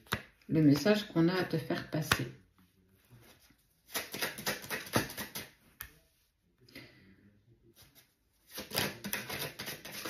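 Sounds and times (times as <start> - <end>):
cards being shuffled: 3.2 - 5.6, 7.8 - 10.0.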